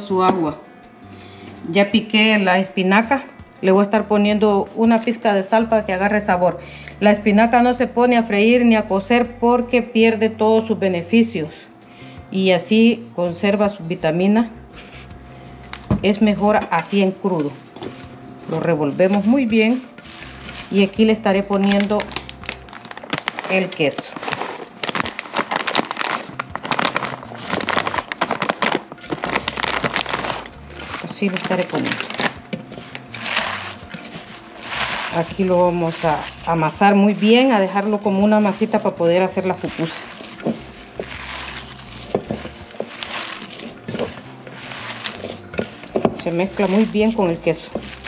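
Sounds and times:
hands kneading moist food: 0:17.3 - 0:48.0
plastic bag crinkling: 0:19.7 - 0:48.0.

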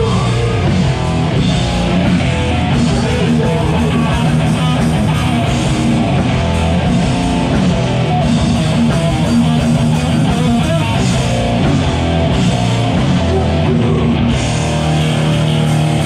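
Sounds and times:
punk band playing live: 0:00.0 - 0:16.0.

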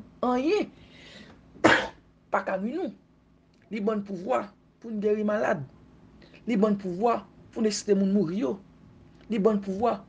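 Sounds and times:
person speaking: 0:00.0 - 0:00.8, 0:02.4 - 0:03.0, 0:03.6 - 0:08.6, 0:09.2 - 0:10.0
person coughing: 0:01.6 - 0:02.0.

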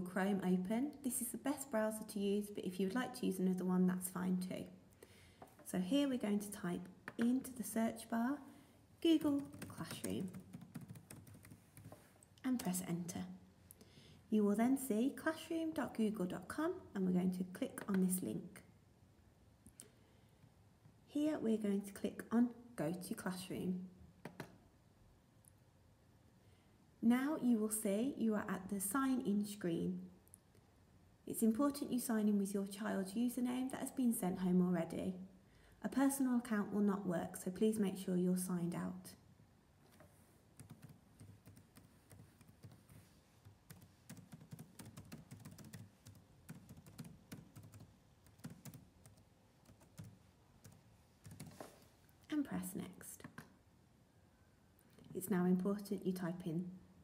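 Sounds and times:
laptop keyboard typing: 0:09.2 - 0:12.0, 0:24.2 - 0:24.6, 0:40.6 - 0:51.7.

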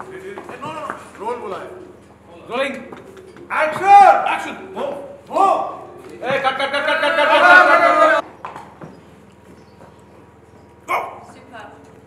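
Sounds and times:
sharp bark-like animal call: 0:10.9 - 0:11.3.

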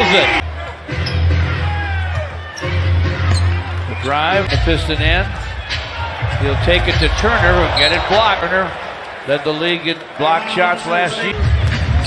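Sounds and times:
crowd noise: 0:00.0 - 0:12.0
music with heavy bass: 0:04.4 - 0:07.8.

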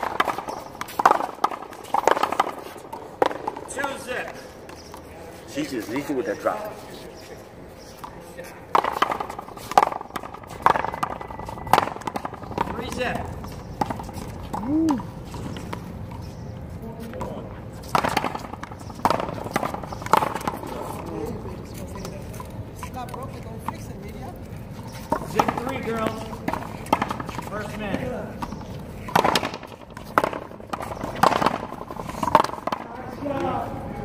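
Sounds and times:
paddles striking ball: 0:00.0 - 0:05.0, 0:17.2 - 0:21.0, 0:25.1 - 0:33.5.

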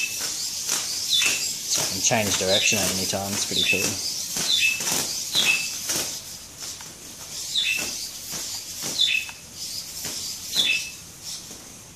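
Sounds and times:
servos whirring: 0:00.0 - 0:11.5.

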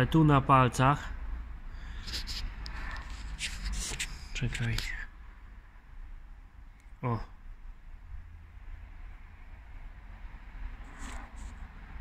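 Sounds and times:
hands rubbing cloth rag: 0:01.9 - 0:04.7.

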